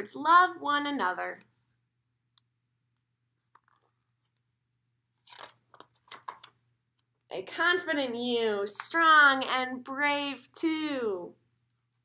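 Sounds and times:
book page turning: 5.2s - 6.6s.

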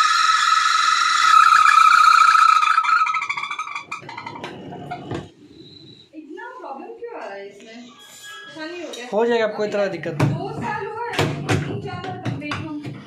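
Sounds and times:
washing machine tub squealing: 0.0s - 5.3s
knocks: 10.1s - 13.0s.

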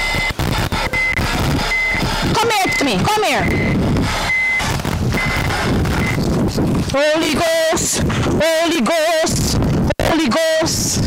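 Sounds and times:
reversing alarm beeping: 0.0s - 6.2s
low engine rumble: 0.0s - 7.0s.

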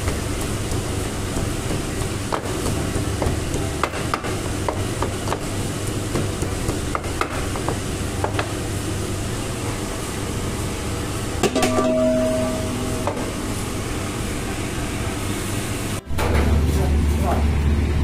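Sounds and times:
pestle pounding in wooden mortar: 0.0s - 8.6s.

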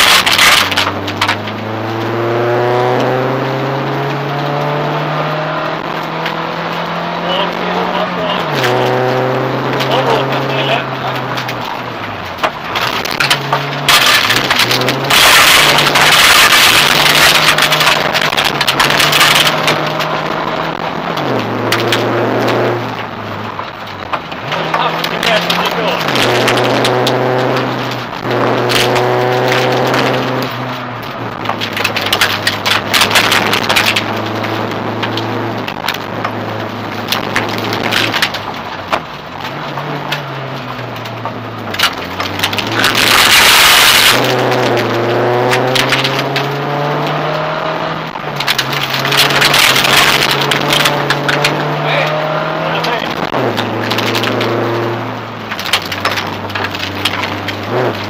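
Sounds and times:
gravel clicking against car: 0.0s - 58.0s
loud rush of noise: 0.0s - 58.0s
rally car engine revving: 0.0s - 58.0s.

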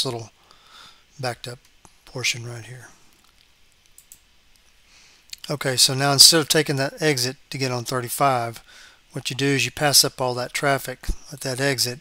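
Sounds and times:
computer mouse clicks: 3.3s - 4.7s.

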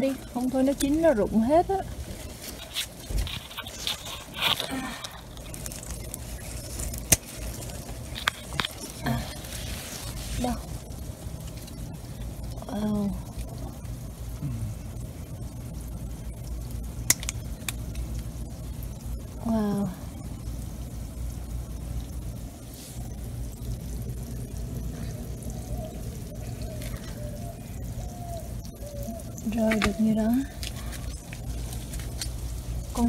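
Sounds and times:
steady low rumble: 0.0s - 33.0s
person's wordless utterances: 14.4s - 14.8s.

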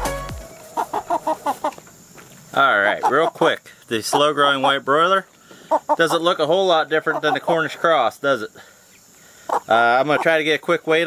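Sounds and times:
background music: 0.0s - 1.3s
chicken clucking: 0.0s - 11.0s.

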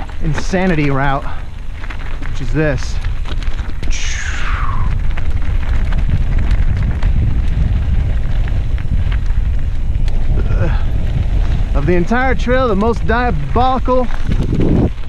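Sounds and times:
tyres rattling on gravel: 0.0s - 15.0s
wind rumbling on microphone: 0.0s - 15.0s.

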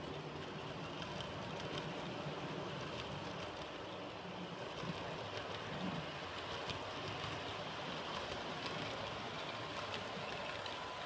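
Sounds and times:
model train rumbling on rails: 0.0s - 11.0s.

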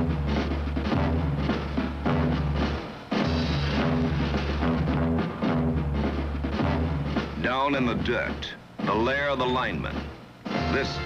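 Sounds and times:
dramatic orchestral music with drums: 0.0s - 11.0s.

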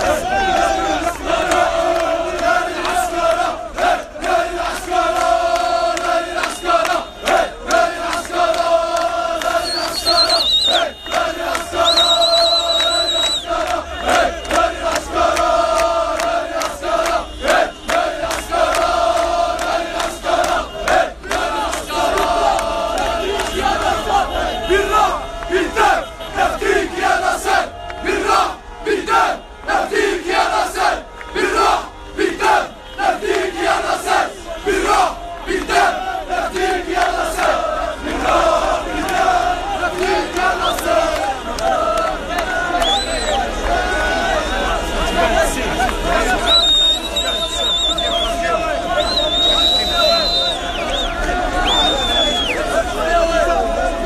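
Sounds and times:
crowd chanting and shouting: 0.0s - 54.0s
shrill whistle: 9.5s - 13.6s, 42.8s - 43.5s, 46.4s - 52.6s.

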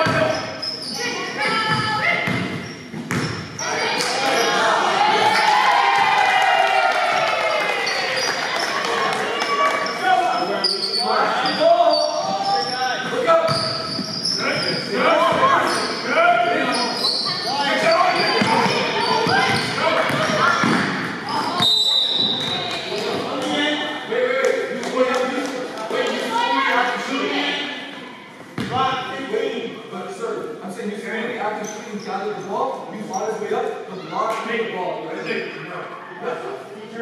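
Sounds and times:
basketball bouncing on gym floor: 1.6s - 3.5s, 18.4s - 22.8s, 28.6s - 28.8s
voices shouting: 3.6s - 23.7s.

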